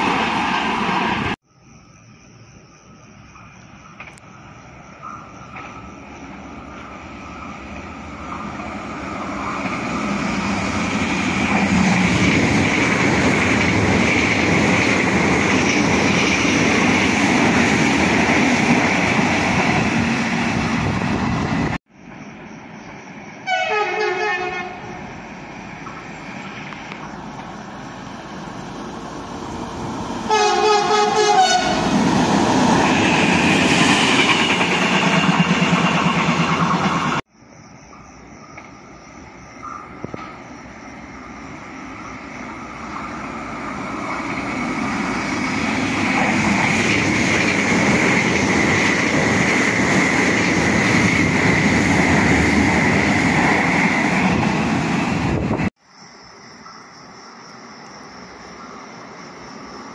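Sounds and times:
electric train running: 5.5 - 21.8, 25.1 - 37.2
train horn blasts: 23.4 - 25.0, 30.3 - 32.0.

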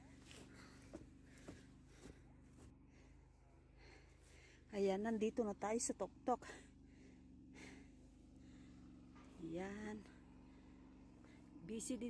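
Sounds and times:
faint footsteps on grass: 0.0 - 5.9, 9.0 - 12.0
low steady hum: 0.0 - 12.0.

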